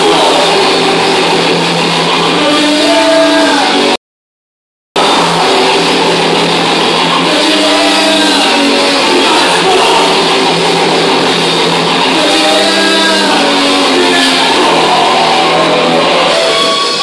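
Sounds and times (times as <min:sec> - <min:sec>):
distorted electric guitar chords: 0:00.0 - 0:04.0, 0:05.0 - 0:17.0
thrash metal band playing live: 0:00.0 - 0:04.0, 0:05.0 - 0:17.0.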